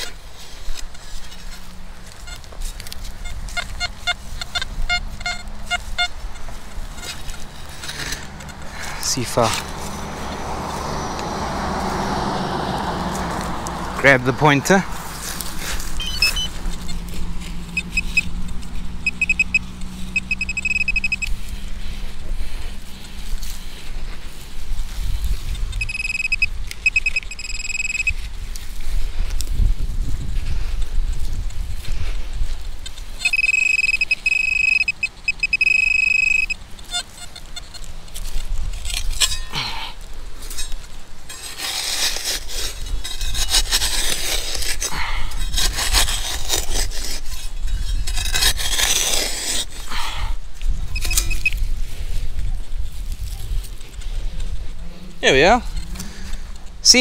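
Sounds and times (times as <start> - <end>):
digging tool scraping soil: 0.0 - 57.0
metal detector high-pitched tone: 3.2 - 9.7, 16.0 - 21.5, 25.7 - 28.2, 33.2 - 37.8, 50.9 - 51.6
wind rumble on microphone: 14.8 - 33.3, 37.6 - 41.3, 42.2 - 56.9.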